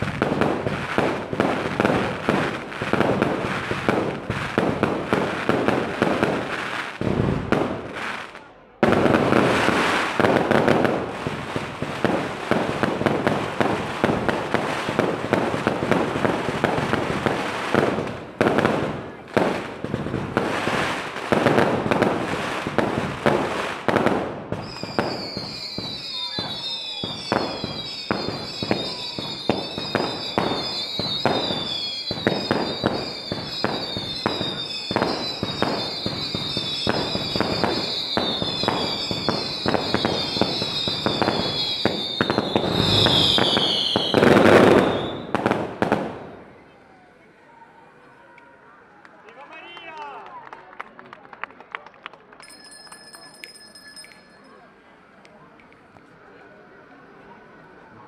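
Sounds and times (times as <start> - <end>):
fireworks bangs: 0.0 - 46.8
fireworks crackling: 0.0 - 48.0
whistling fireworks: 0.0 - 48.1.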